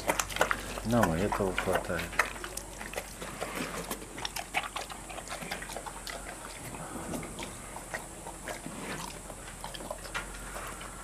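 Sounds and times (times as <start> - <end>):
bear chewing and smacking: 0.0 - 11.0.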